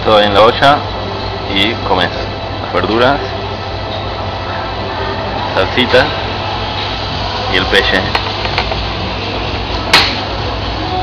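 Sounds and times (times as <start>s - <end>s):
restaurant room hum: 0.0s - 11.0s.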